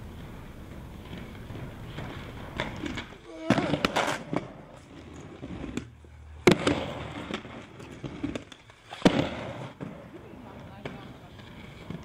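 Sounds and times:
inline skates clacking on concrete: 0:00.0 - 0:12.0.

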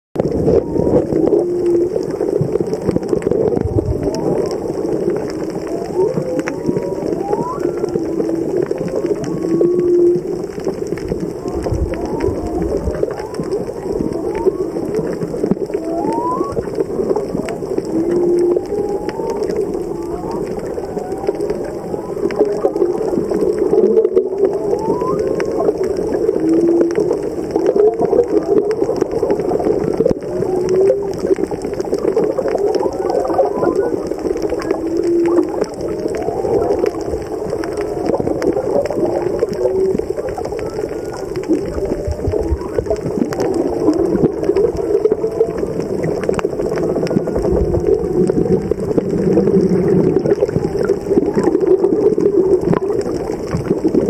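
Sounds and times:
whale song underwater: 0:00.2 - 0:54.0.

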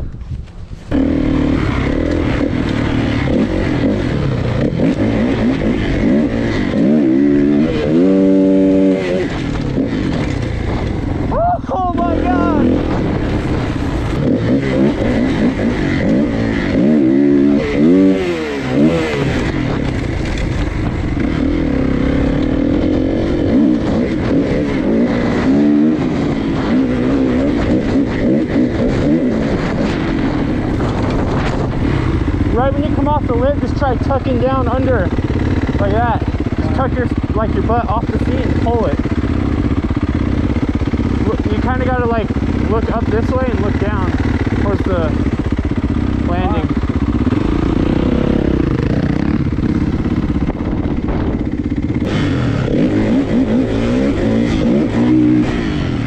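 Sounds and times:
wind noise on microphone: 0:00.0 - 0:56.0
dirt bike engine revving: 0:00.8 - 0:56.0.

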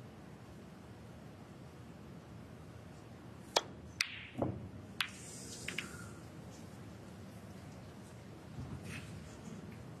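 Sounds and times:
snooker balls clicking: 0:03.5 - 0:06.6
cue striking ball: 0:03.6 - 0:06.0.

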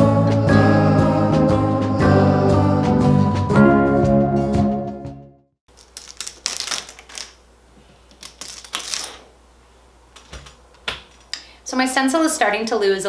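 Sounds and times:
plastic stencil peeling crackles: 0:05.7 - 0:07.4, 0:08.1 - 0:09.2.

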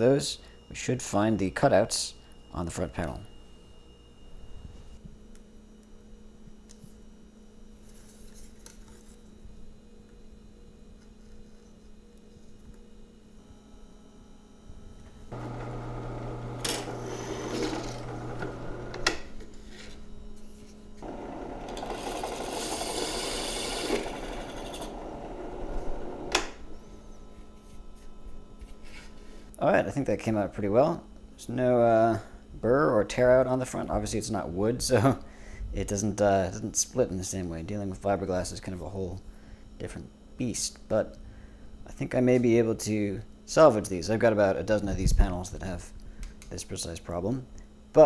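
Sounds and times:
drill press cutting panel: 0:15.3 - 0:19.3, 0:21.0 - 0:26.7.

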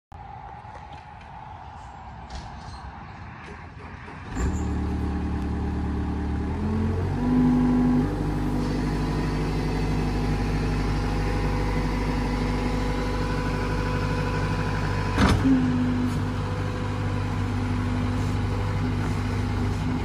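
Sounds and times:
diesel engine running: 0:03.7 - 0:20.0.

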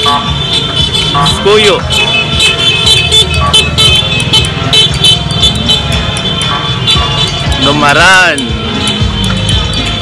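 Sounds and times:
cars and motorcycles moving slowly: 0:00.0 - 0:10.0
loud music with steady beat: 0:00.0 - 0:10.0.

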